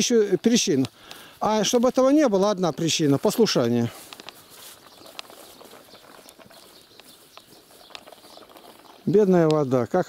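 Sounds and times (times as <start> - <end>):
faint outdoor background: 0.0 - 10.0
soft clicks: 3.6 - 5.4.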